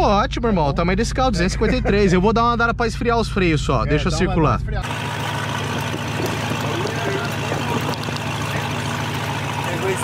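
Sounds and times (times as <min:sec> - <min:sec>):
car engine idling: 0:04.6 - 0:10.0.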